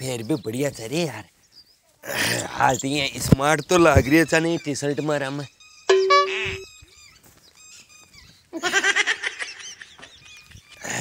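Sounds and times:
small birds chirping: 0.0s - 8.6s, 9.5s - 11.0s
farm animal calling: 4.6s - 8.4s.

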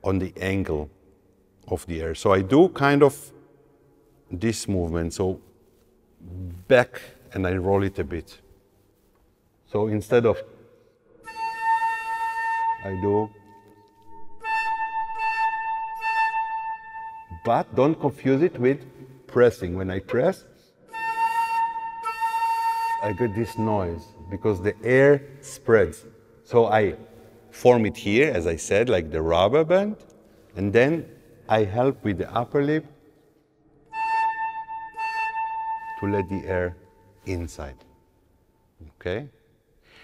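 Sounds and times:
flute holding high note: 11.2s - 17.4s, 20.9s - 24.1s, 33.9s - 36.5s.

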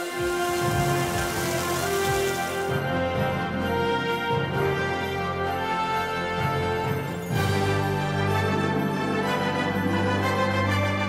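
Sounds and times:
food sizzling on griddle: 0.0s - 2.7s
background music: 0.0s - 11.0s.

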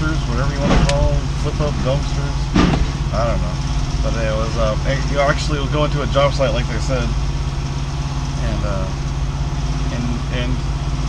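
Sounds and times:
truck diesel engine idling: 0.0s - 11.0s.

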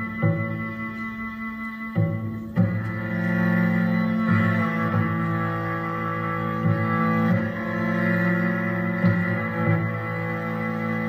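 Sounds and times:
bowed cello sustained notes: 0.0s - 11.0s.

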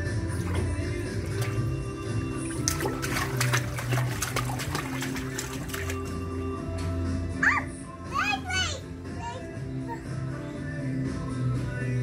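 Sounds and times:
background music: 0.0s - 12.0s
young child babbling: 7.4s - 10.2s.

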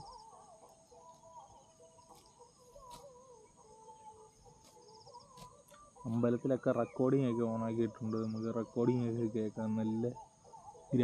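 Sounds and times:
faint distant calls: 0.0s - 11.0s
high insect hum: 0.0s - 11.0s.

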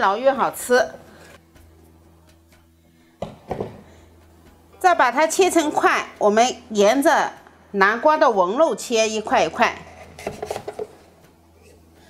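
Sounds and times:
pumpkin knocking on wooden board: 3.2s - 3.8s.

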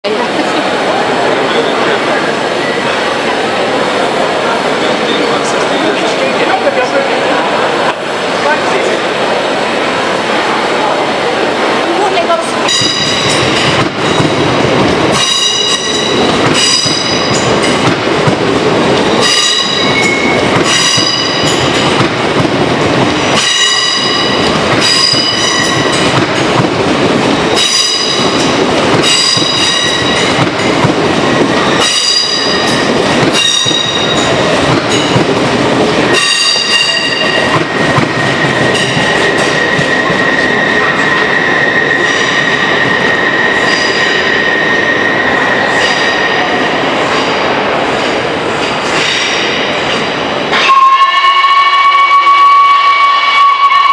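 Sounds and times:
train wheels clicking over rail joints: 12.7s - 44.4s, 45.6s - 50.7s
train wheels squealing: 15.2s - 17.5s, 19.2s - 21.7s, 38.2s - 46.5s.

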